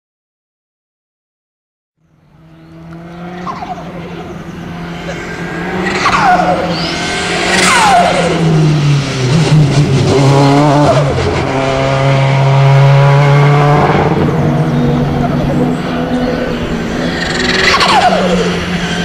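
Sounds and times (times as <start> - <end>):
racing car engine: 2.0 - 19.0.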